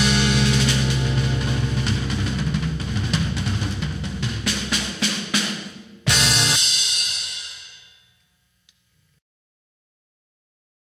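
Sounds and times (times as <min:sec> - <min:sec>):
drum fill: 0:00.0 - 0:07.6
crash cymbal ringing: 0:06.4 - 0:08.4.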